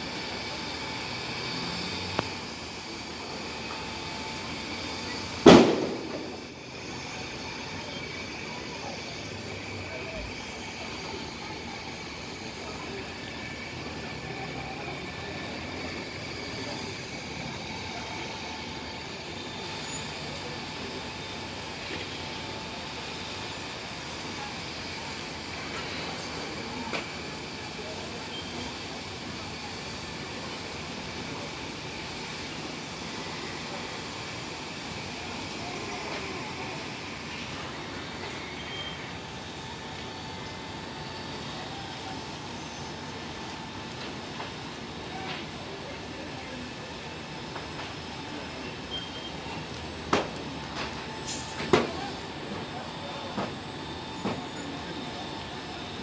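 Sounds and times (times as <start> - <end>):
sharp loud bang: 5.5 - 6.2
steady fire rumble: 10.2 - 56.0.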